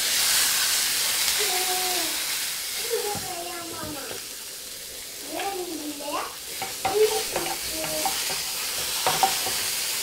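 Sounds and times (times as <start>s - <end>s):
mushrooms sizzling in a hot pan: 0.0s - 10.0s.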